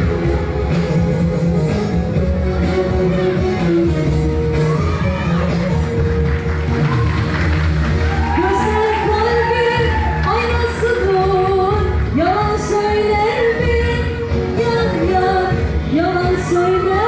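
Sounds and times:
woman singing pop song: 0.0 - 6.1, 8.3 - 17.0
amplified backing track: 0.0 - 17.0.

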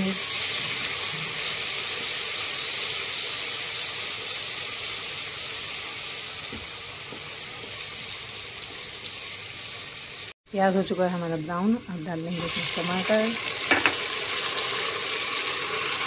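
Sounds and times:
onions sizzling in oil: 0.0 - 16.0.

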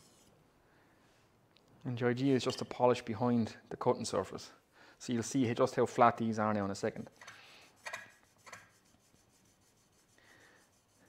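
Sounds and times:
chisel rubbing on abrasive film: 7.1 - 11.0.

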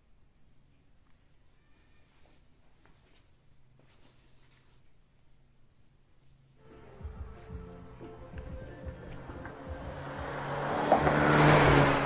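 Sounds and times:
quiet background music: 5.6 - 12.0
motor vehicle passing by: 6.6 - 12.0.

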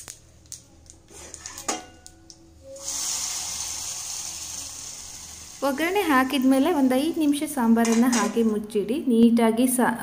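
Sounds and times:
hot oil sizzling in a pan: 2.8 - 7.2.

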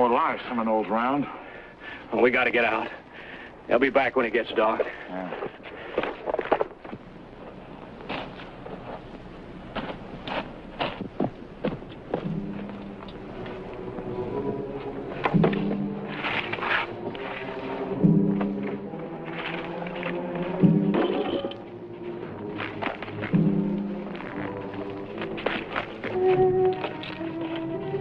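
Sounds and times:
dramatic orchestral music: 12.3 - 28.0
knocks and thuds: 15.2 - 15.9.

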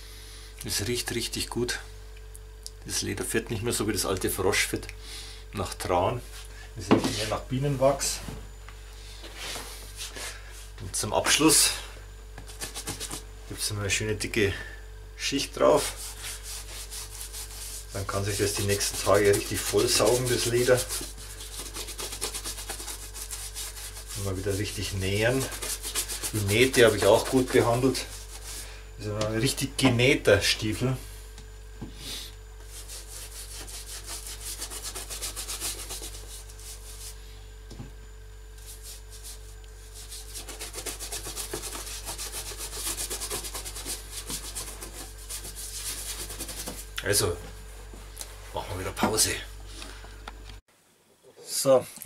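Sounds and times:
bristle brush scrubbing leather: 15.7 - 28.6, 32.7 - 37.2, 38.6 - 46.9.

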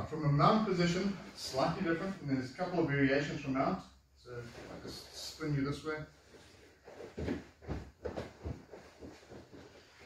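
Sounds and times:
bodies scuffing on a mat: 6.2 - 10.0
fabric rustling: 6.2 - 10.0.

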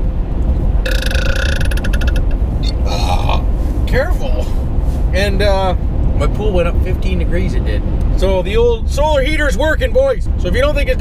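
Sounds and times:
road and engine rumble: 0.0 - 11.0
man burping loudly: 0.9 - 3.5.

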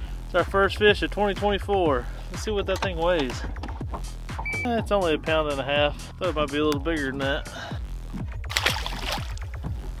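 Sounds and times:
background music with steady beat: 0.0 - 10.0
fish splashing into water: 8.5 - 9.5.

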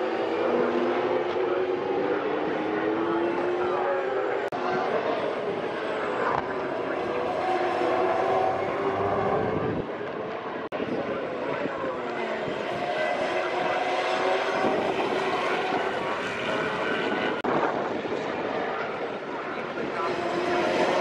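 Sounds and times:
racing car engines revving: 0.0 - 21.0.

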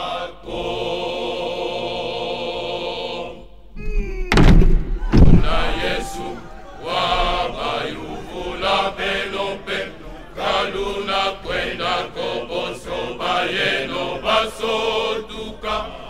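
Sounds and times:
men's choir singing: 0.0 - 3.6, 5.0 - 16.0.

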